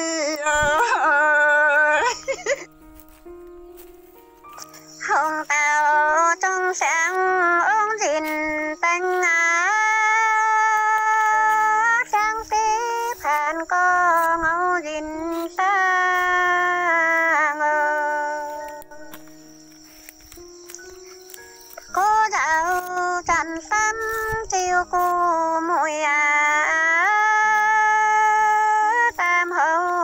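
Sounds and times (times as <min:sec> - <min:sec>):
high solo voice singing: 0:00.0 - 0:02.4, 0:05.0 - 0:19.3, 0:21.9 - 0:30.0.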